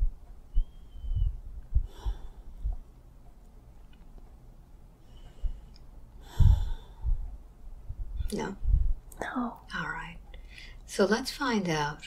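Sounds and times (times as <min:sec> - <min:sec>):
dull low thump: 0:01.0 - 0:02.0
person whispering: 0:09.2 - 0:09.7.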